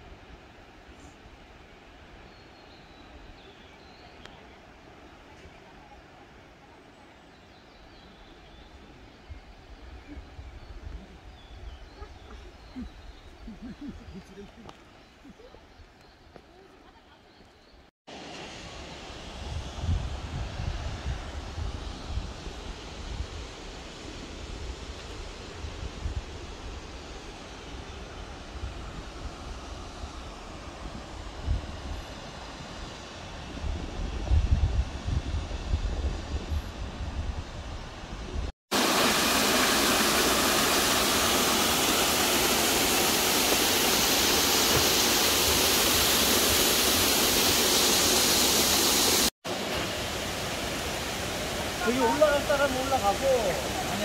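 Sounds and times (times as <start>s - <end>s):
open-air hiss: 0.0s - 54.0s
wind buffeting microphone: 19.4s - 26.8s, 27.9s - 38.5s
waterfall rushing: 38.7s - 54.0s.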